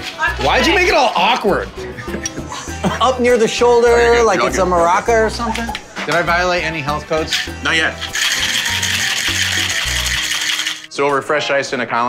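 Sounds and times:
background music with bass line: 0:00.0 - 0:10.9
ice rattling in cocktail shaker: 0:07.1 - 0:10.9.

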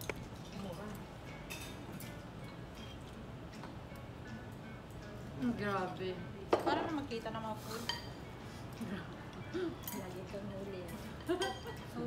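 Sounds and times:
utensils clinking against bowls: 0:00.0 - 0:03.2, 0:06.5 - 0:12.0.

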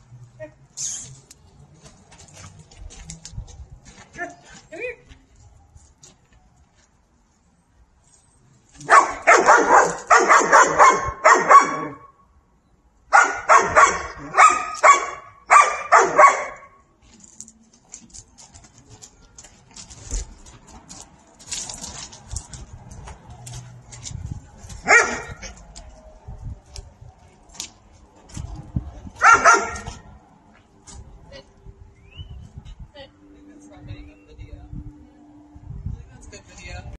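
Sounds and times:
dog barking: 0:08.8 - 0:12.1, 0:13.1 - 0:16.8, 0:24.8 - 0:25.5, 0:29.2 - 0:30.0.

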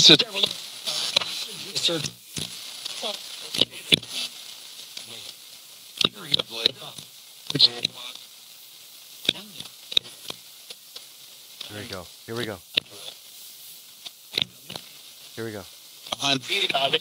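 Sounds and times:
choppy radio voices: 0:00.0 - 0:08.4, 0:09.1 - 0:10.4, 0:11.5 - 0:13.3, 0:14.3 - 0:17.0
radio static hiss: 0:00.0 - 0:17.0.

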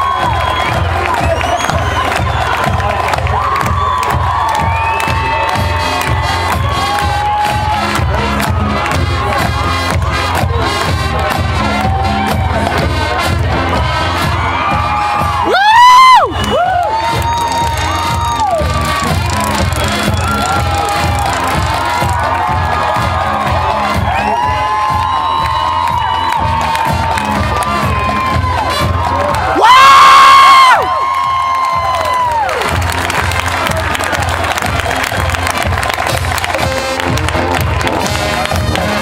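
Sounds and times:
crowd cheering and whooping: 0:00.0 - 0:39.0
marching drumline beat: 0:00.0 - 0:39.0.

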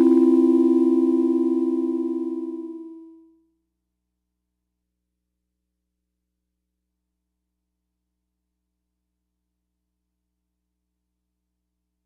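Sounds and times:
synthesizer low wobbling notes: 0:00.0 - 0:02.8.

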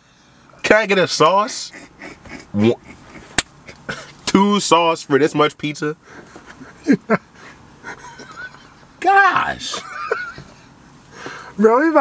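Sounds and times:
men laughing: 0:01.4 - 0:04.2, 0:06.2 - 0:10.8.

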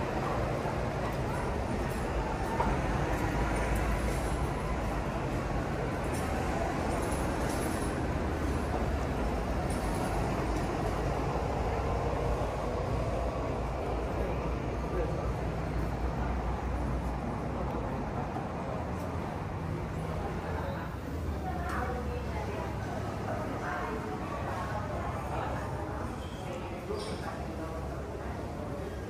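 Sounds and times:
road traffic rumble: 0:00.0 - 0:29.0.

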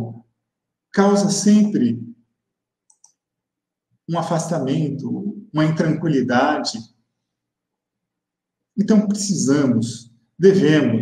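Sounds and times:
man speaking: 0:01.0 - 0:02.1, 0:04.1 - 0:06.8, 0:08.8 - 0:11.0
faint short clicks: 0:02.9 - 0:03.2.

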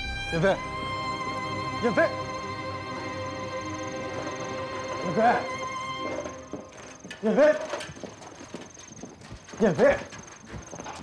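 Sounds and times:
crickets chirring: 0:00.4 - 0:11.0.

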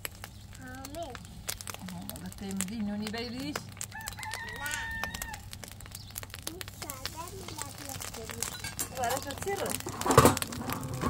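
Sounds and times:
wood fire crackling: 0:00.0 - 0:11.0
rooster crowing: 0:03.9 - 0:05.6.

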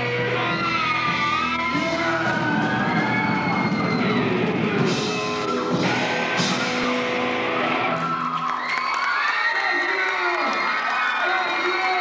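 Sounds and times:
audience cheering and whooping: 0:00.0 - 0:12.0
rock band chord: 0:04.1 - 0:08.0.

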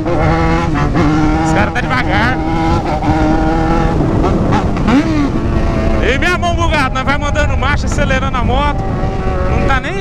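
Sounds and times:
motorcycle engine revving: 0:00.0 - 0:10.0
wind on microphone: 0:00.0 - 0:10.0.

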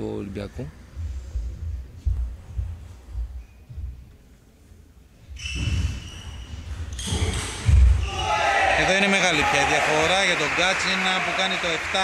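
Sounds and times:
low thuds: 0:00.8 - 0:04.2.

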